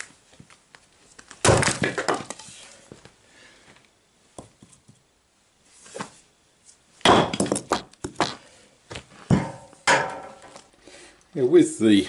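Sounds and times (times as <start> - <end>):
split wood pieces clattering: 1.2 - 2.4
maul striking wood: 1.4 - 2.3, 7.0 - 8.4, 9.3 - 10.6.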